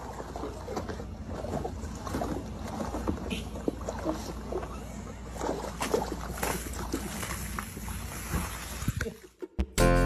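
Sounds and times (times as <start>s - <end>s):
hose water splashing into tub: 0.0s - 9.4s
music: 9.6s - 10.0s.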